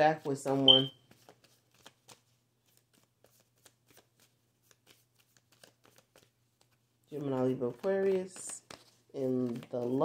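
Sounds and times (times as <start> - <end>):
cards shuffling: 0.0 - 10.0.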